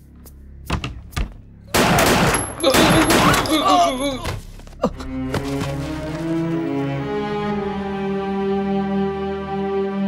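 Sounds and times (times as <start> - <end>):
burst of gunfire: 1.8 - 3.4
man crying out: 2.6 - 5.0
low bowed-string music: 3.8 - 10.0.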